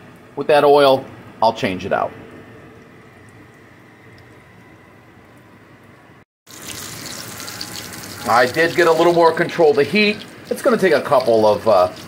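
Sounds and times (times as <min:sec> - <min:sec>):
cutlets sizzling in oil: 0:06.5 - 0:12.0.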